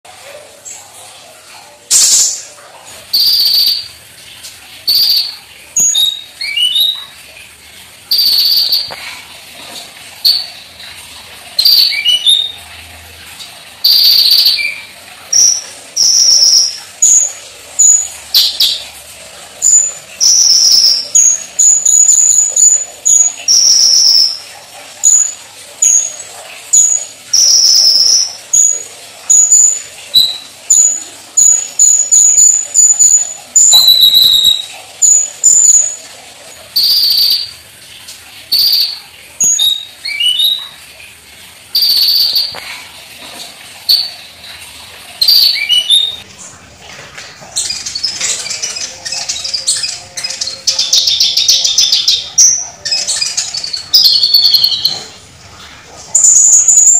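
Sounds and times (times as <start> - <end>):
bird singing high chirps: 3.1 - 3.9, 4.9 - 7.0, 8.1 - 9.0, 11.6 - 12.6, 13.8 - 14.8, 15.4 - 18.8, 19.7 - 24.4, 26.8 - 36.0, 38.5 - 40.6, 41.8 - 42.6, 45.2 - 46.2, 47.6 - 55.1.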